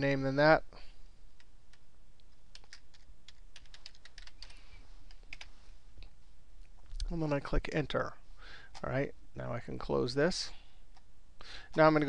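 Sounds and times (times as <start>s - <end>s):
keyboard keys clicking: 2.5s - 4.5s.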